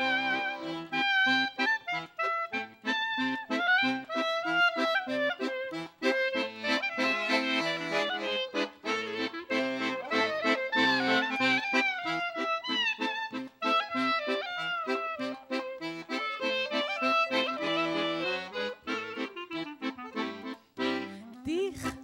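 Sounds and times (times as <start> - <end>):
accordion chords: 0.0 - 22.0
clarinet melody with bending notes: 0.0 - 22.0
person singing: 21.0 - 22.0.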